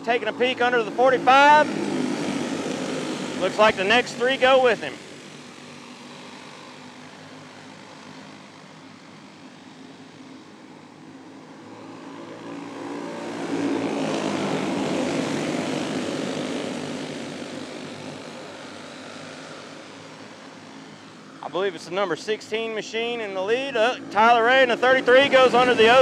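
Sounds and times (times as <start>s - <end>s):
racing kart engines droning: 0.0s - 26.0s.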